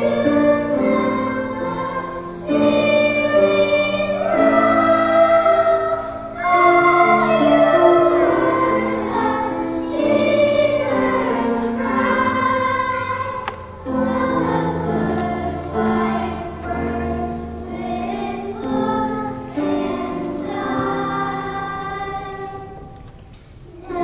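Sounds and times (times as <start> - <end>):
children's choir singing: 0.0 - 24.0.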